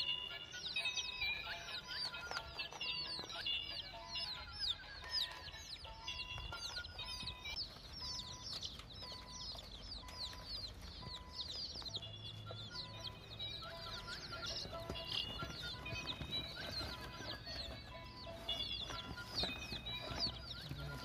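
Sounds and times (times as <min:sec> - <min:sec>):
chickens clucking: 0:00.0 - 0:21.0
chicks peeping: 0:00.0 - 0:21.0.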